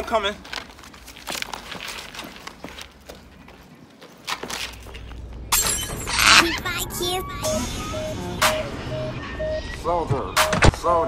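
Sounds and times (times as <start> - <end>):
footsteps on pavement: 0.0 - 5.5.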